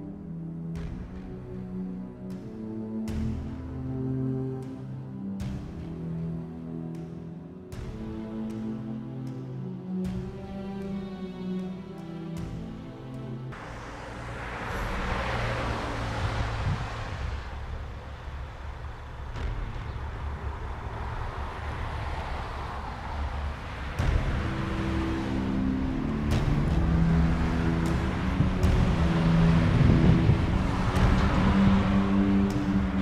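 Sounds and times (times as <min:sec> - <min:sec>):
cars passing: 0:00.0 - 0:33.0
low steady tones: 0:00.0 - 0:33.0.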